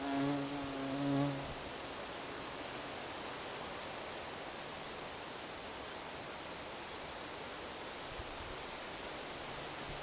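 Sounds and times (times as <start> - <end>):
bumblebee buzzing in flight: 0.0 - 1.6.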